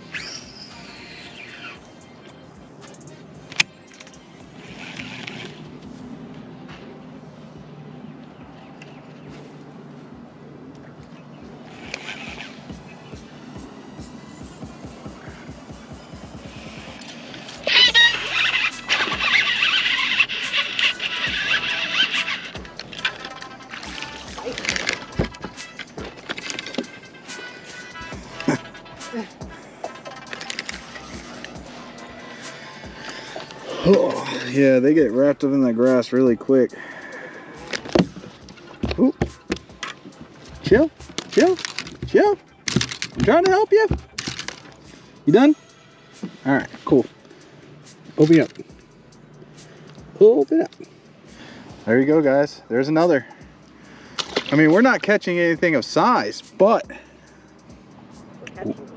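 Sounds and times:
background music: 0.0 - 58.9.

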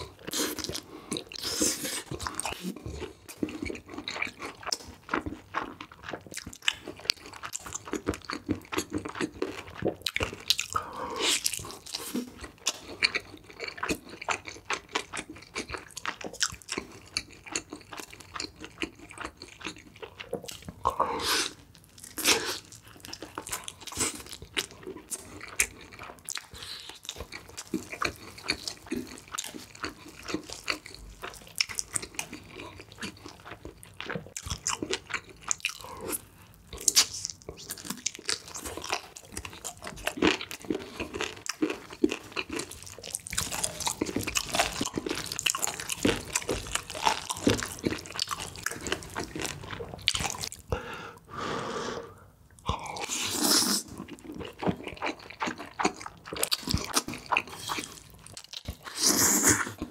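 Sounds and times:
chewing and crunching: 0.0 - 50.7, 52.6 - 59.9
noodles slurped: 58.7 - 59.9.

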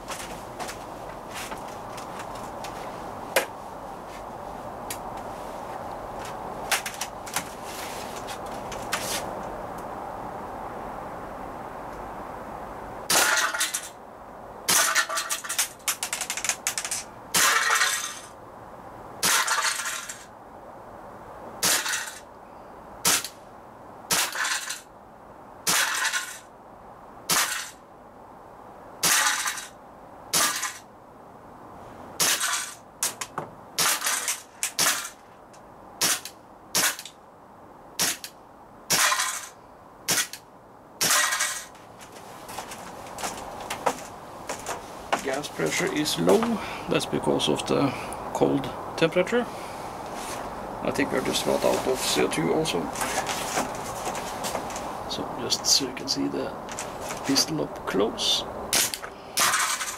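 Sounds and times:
air pistol shots cracking: 13.1 - 13.9, 17.3 - 18.1, 19.2 - 19.9, 21.6 - 22.2, 23.0 - 23.4, 24.1 - 24.8, 25.7 - 26.4, 27.3 - 27.8, 29.0 - 29.7, 30.3 - 30.8, 32.2 - 32.8, 33.8 - 35.2, 36.0 - 37.1, 38.0 - 38.3, 38.9 - 39.5, 40.1 - 40.4, 41.0 - 41.7, 58.7 - 59.9.

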